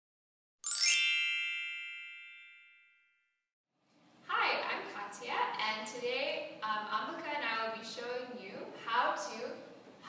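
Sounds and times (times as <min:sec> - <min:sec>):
bright shimmering chime: 0:00.6 - 0:03.0.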